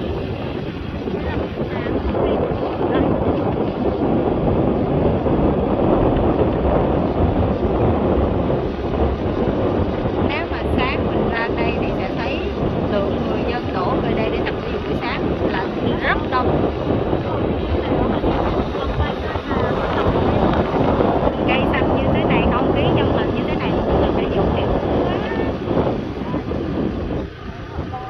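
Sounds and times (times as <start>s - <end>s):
wind rumbling on microphone: 0.0s - 28.0s.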